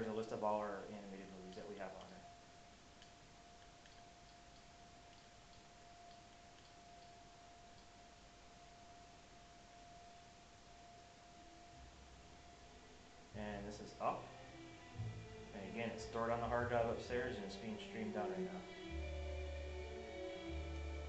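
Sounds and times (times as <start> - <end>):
faint steady tone: 0.0 - 21.0
faint ticks: 3.0 - 8.0.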